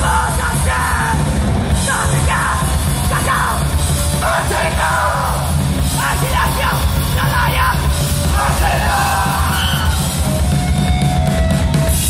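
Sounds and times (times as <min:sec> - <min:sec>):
shouted lead vocal: 0:00.0 - 0:10.3
punk band playing live: 0:00.0 - 0:12.0.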